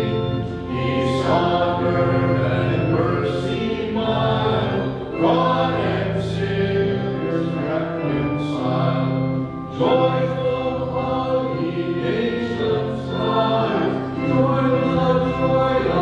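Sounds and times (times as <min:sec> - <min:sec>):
choir singing a hymn: 0:00.0 - 0:16.0.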